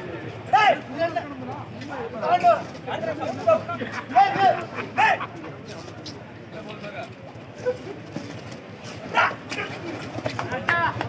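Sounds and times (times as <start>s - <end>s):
players and crowd shouting: 0.4s - 1.0s, 3.4s - 5.3s, 9.0s - 10.0s.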